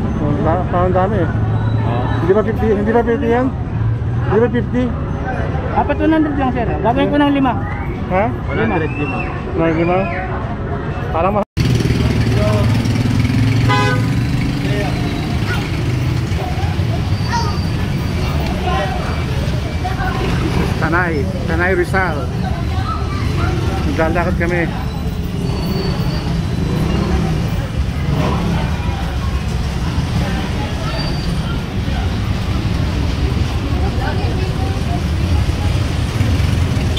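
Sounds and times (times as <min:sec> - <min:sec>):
low rumble of road traffic: 0:00.0 - 0:36.9
vehicle horn toot: 0:13.6 - 0:14.2.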